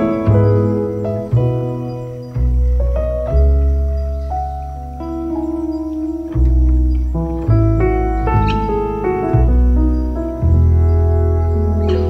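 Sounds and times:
slow relaxing piano music: 0.0 - 12.0.

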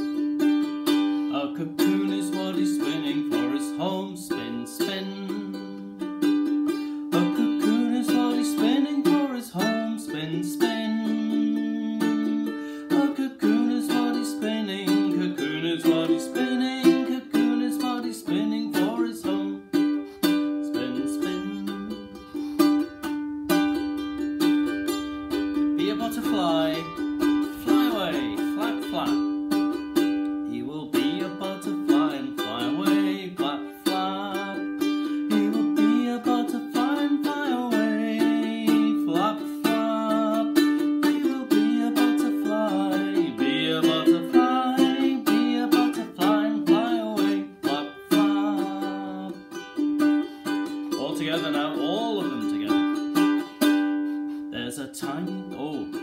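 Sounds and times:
man singing: 0.0 - 56.0
ukulele strumming: 0.0 - 56.0.

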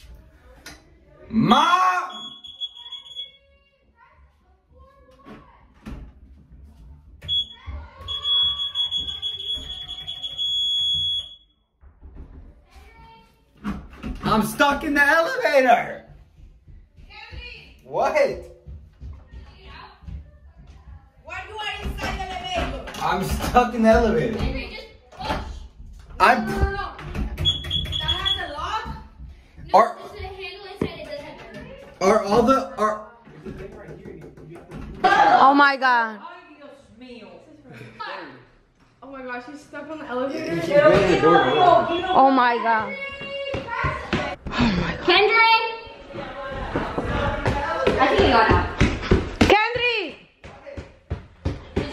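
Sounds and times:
elevator alarm buzzer: 2.1 - 3.3, 7.3 - 11.5
knocks and thumps: 33.2 - 35.1.

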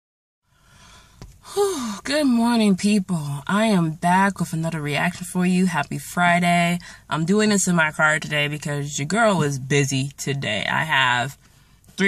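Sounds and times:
woman breathing in: 0.5 - 2.0
woman sighing: 0.7 - 2.1.

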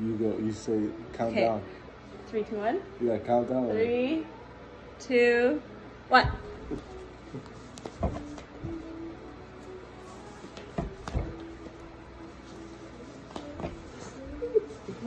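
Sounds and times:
cloth rustling: 6.4 - 15.0.

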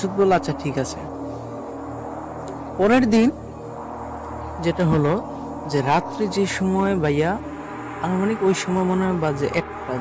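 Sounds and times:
man talking: 0.0 - 1.1, 2.8 - 3.4, 4.6 - 7.4, 8.0 - 10.0
low hum: 0.0 - 10.0.

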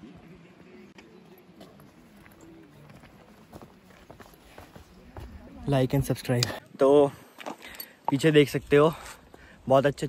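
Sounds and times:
footsteps on loose stones: 1.6 - 5.8.

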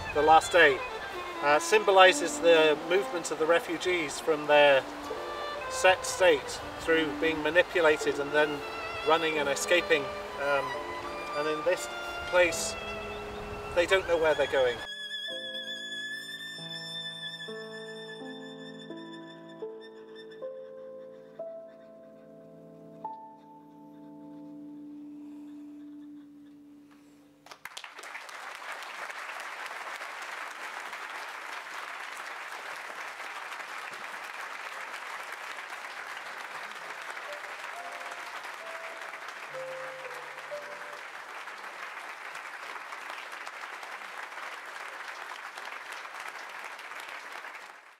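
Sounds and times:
audience applause: 0.0 - 14.9, 27.4 - 47.9
held music notes: 0.0 - 27.4, 36.9 - 41.7.

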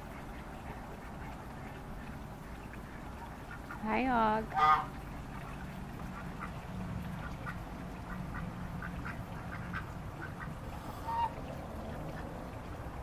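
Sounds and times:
ducks quacking softly: 0.0 - 12.4.

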